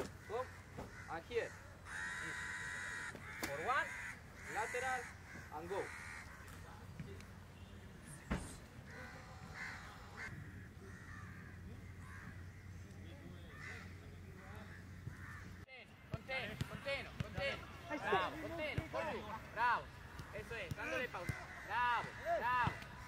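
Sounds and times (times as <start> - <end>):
crows cawing: 0.0 - 7.0, 8.8 - 15.6, 20.1 - 23.0.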